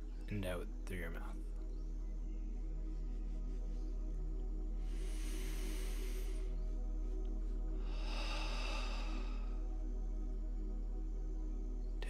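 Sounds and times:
ambient drone music: 0.0 - 12.0
deep breath: 4.9 - 6.6, 7.8 - 9.7.

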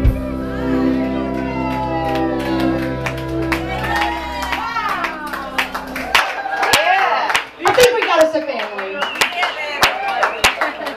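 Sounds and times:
scattered hand claps: 1.6 - 10.9
people talking: 6.7 - 9.9.

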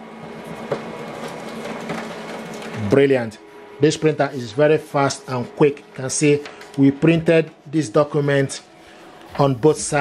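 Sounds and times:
laser printer whirring: 0.0 - 10.0.

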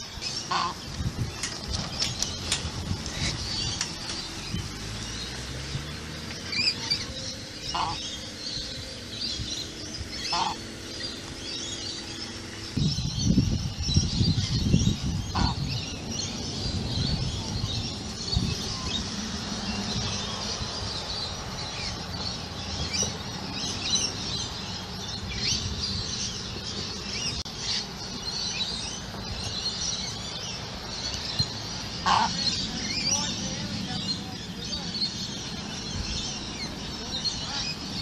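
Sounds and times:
small birds chirping: 0.0 - 38.0
ibis honking grunts: 32.0 - 32.5.

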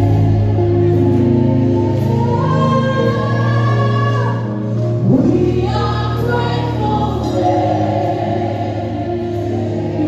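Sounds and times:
woman singing lead vocal: 0.0 - 10.0
backing singers: 5.1 - 10.0.

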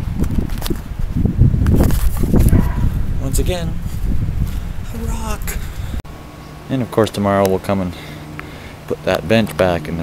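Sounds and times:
camera handling rumble: 1.6 - 3.0.

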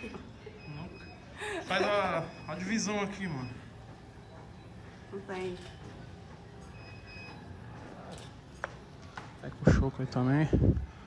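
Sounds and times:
faint high beep: 0.5 - 5.1, 6.6 - 7.7.

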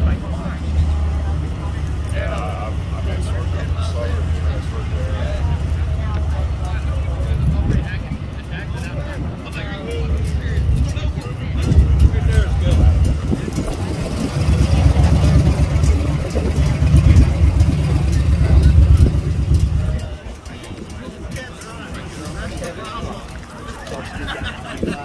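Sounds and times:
people talking: 0.0 - 25.0
motorcycle engine revving: 10.2 - 20.3.

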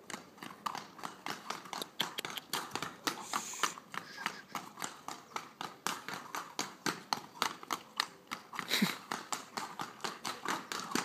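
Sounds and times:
hooves clip-clopping on stone: 0.0 - 11.0.

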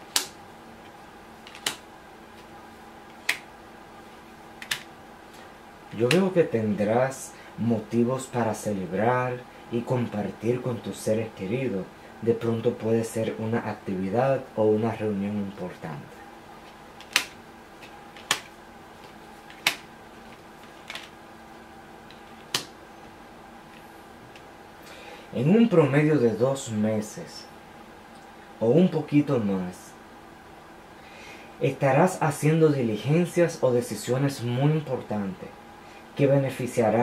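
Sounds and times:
faint room hum: 0.0 - 37.0
playing cards snapping on table: 0.1 - 0.4, 1.5 - 1.8, 3.2 - 3.5, 4.6 - 4.9, 17.0 - 18.5, 19.5 - 19.9, 22.4 - 22.7
sharp short snap: 0.1 - 0.4, 1.5 - 1.8, 3.2 - 3.5, 17.0 - 17.4, 19.6 - 19.9.

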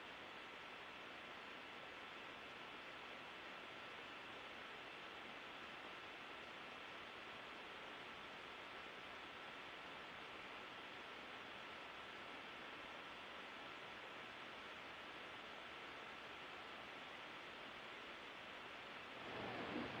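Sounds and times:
faint audio feed hiss: 0.0 - 20.0.

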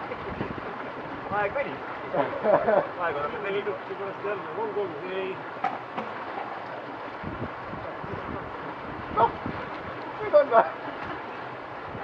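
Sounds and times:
wind buffeting microphone: 0.0 - 2.2, 5.5 - 12.0
stream water flowing: 0.0 - 12.0.

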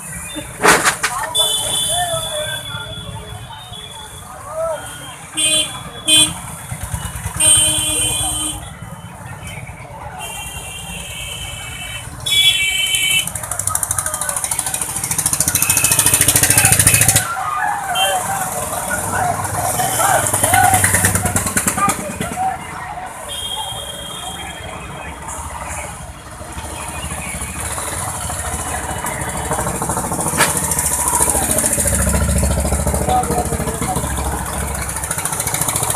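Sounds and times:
people's voices: 0.0 - 10.9, 13.2 - 35.9
motorcycle engine passing: 18.2 - 22.6, 26.6 - 35.9.

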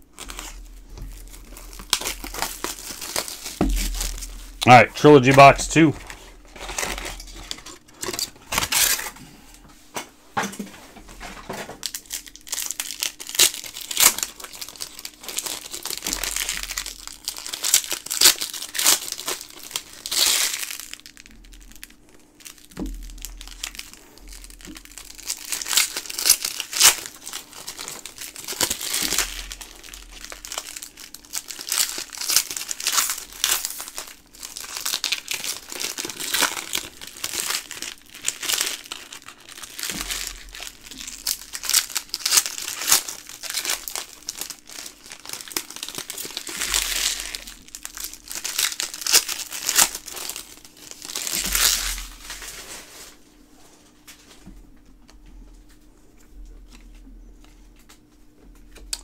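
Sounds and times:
foil wrappers tearing and crinkling: 0.0 - 9.6, 11.1 - 53.2.

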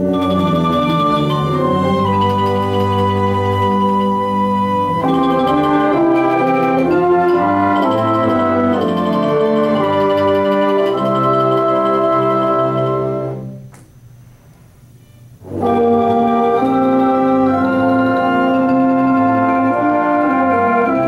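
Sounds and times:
instrumental ensemble playing chords: 0.0 - 13.7, 15.4 - 21.0.

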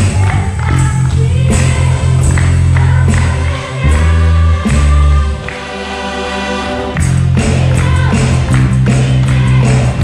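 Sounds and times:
heavy bass line: 0.0 - 5.5, 6.6 - 10.0
group singing gospel song: 0.0 - 10.0.

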